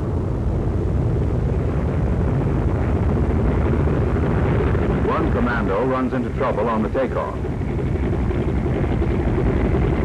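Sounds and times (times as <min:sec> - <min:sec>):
aircraft engines rumbling: 0:00.0 - 0:10.0.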